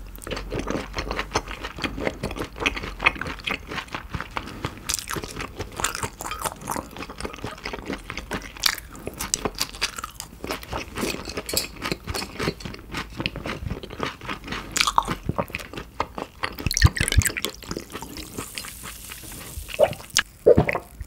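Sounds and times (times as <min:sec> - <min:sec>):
wet chewing mouth clicks: 0:14.8 - 0:20.9.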